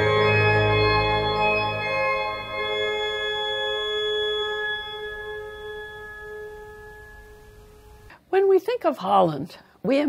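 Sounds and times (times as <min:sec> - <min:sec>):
pipe organ chord: 0:00.0 - 0:08.1.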